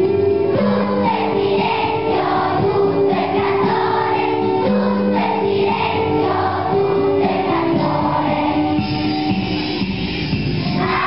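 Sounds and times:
children's choir singing: 0:00.0 - 0:09.7, 0:10.7 - 0:11.0.

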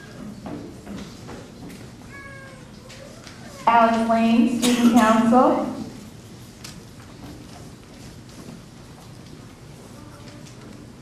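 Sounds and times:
hall background noise: 0:00.0 - 0:11.0
woman's amplified voice: 0:03.6 - 0:06.0.

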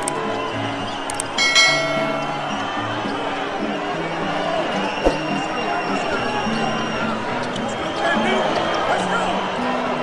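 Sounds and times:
quick clicks: 0:01.0 - 0:01.4
bright bell chime: 0:01.4 - 0:02.8.

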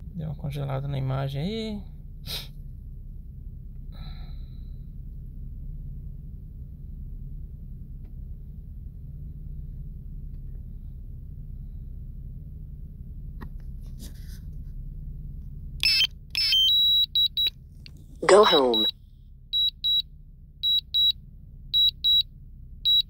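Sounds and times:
low rumble: 0:01.7 - 0:22.8
alert beeps: 0:15.8 - 0:17.5, 0:18.2 - 0:18.9.

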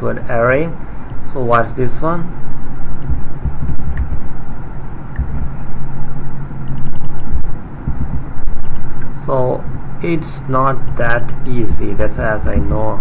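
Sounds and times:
steady low hum: 0:00.0 - 0:13.0
uneven low rumble: 0:00.0 - 0:13.0.

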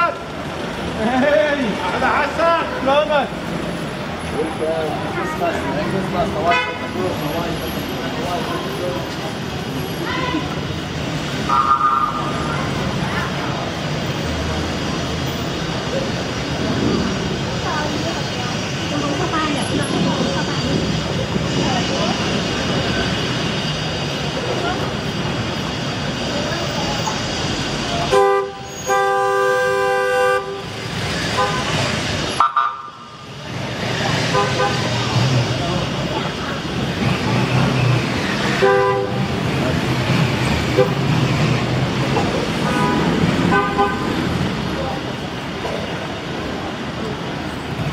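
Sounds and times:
slow-moving cars: 0:00.0 - 0:47.9
people talking: 0:00.9 - 0:03.4, 0:04.1 - 0:10.8, 0:11.6 - 0:23.1, 0:24.1 - 0:28.2, 0:33.4 - 0:37.9, 0:44.3 - 0:47.9
car horns: 0:06.4 - 0:07.0, 0:11.5 - 0:12.3, 0:28.1 - 0:30.7, 0:31.3 - 0:33.0, 0:34.3 - 0:35.0, 0:38.6 - 0:39.3, 0:42.6 - 0:44.2.

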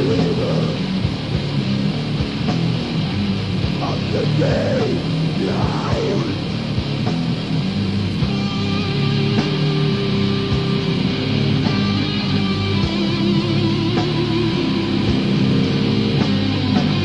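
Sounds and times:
death metal music: 0:00.0 - 0:17.0
distorted electric guitar riffing: 0:00.0 - 0:17.0.

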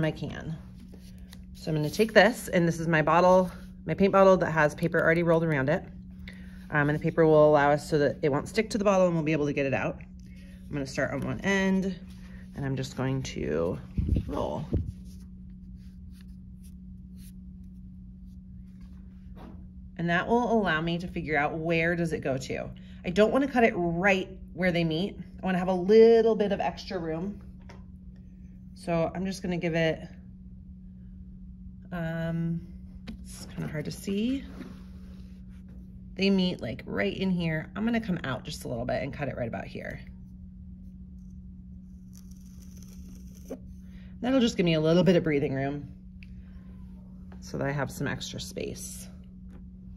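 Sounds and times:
steady low hum: 0:00.0 - 0:49.9
knife scraping through soft clay: 0:40.9 - 0:43.9.

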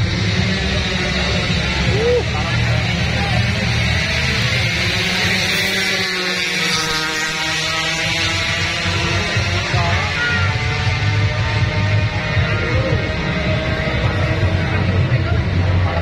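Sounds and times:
crowd voices: 0:00.0 - 0:16.0
motorcycle engine revving: 0:00.0 - 0:16.0.

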